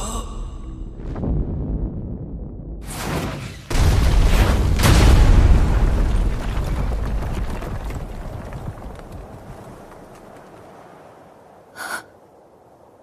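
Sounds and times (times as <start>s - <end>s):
explosion rumble: 0.8s - 10.0s
person gasping: 11.8s - 12.1s.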